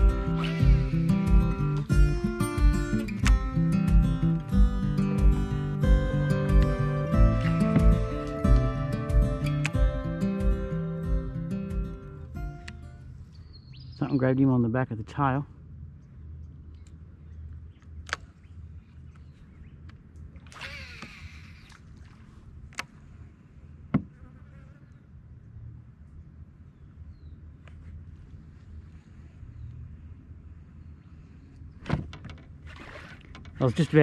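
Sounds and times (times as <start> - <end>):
insect buzzing: 0.0 - 1.7
low steady rumble: 14.6 - 23.9, 25.0 - 34.0.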